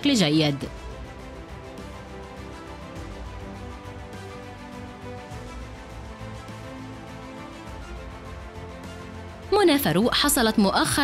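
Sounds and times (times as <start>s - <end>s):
background music with bass beat: 0.6s - 10.2s.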